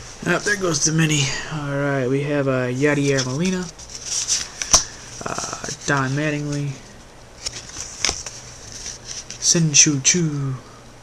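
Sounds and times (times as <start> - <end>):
person speaking: 0.1 - 7.0, 9.3 - 10.7
trading cards sliding: 0.2 - 0.9, 2.8 - 9.6.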